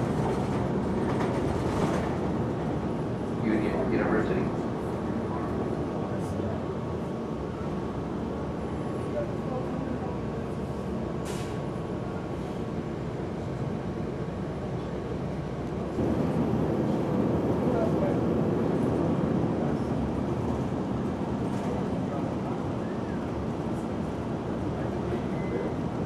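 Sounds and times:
bus engine and road noise: 0.0 - 26.0.

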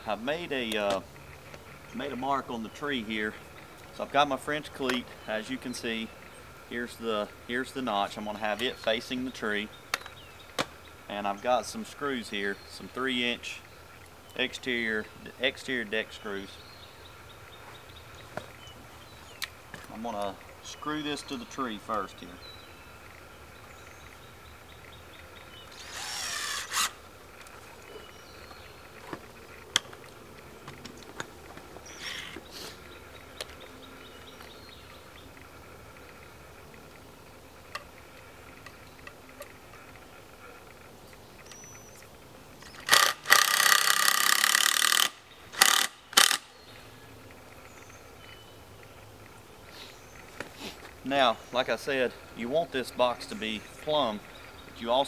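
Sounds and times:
cordless drill driving screws: 25.7 - 27.0, 42.8 - 46.4.

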